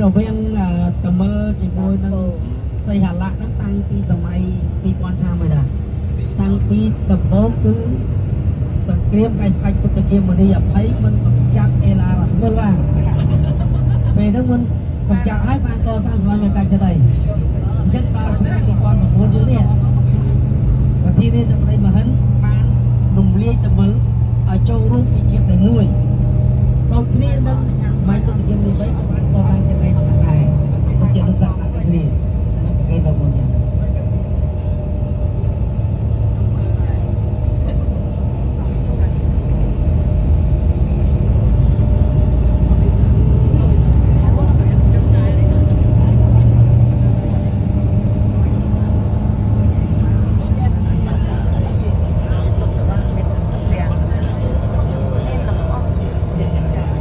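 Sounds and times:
bus engine and road rumble: 0.0 - 57.0.

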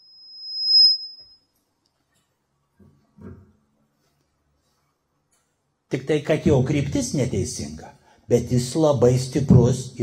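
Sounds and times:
microphone feedback ringing: 0.0 - 1.6.

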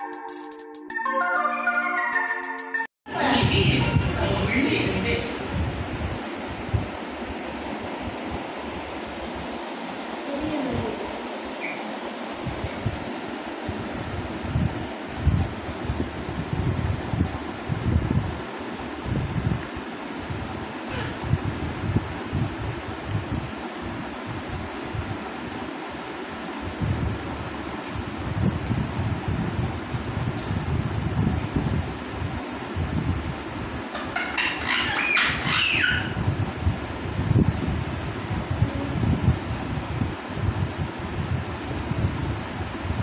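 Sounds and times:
mechanical fan whirring: 3.1 - 43.0
wind buffeting microphone: 26.6 - 33.9, 35.8 - 43.0.

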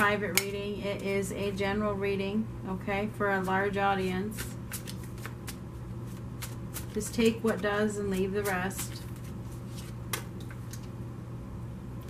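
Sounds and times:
cards shuffled by hand: 4.3 - 11.0.

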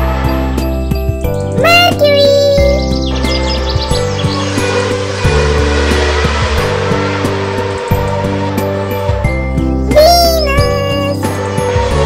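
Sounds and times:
background music: 0.0 - 12.0
car engine rushing noise: 4.2 - 8.8.

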